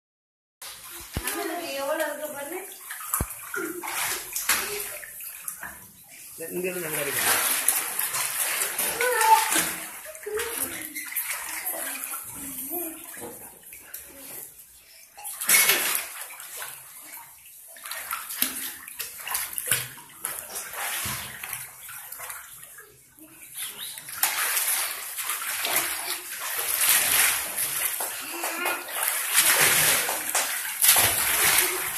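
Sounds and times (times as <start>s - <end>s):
water splashing in a pool: 0.6s - 31.9s
children's voices: 8.8s - 10.8s.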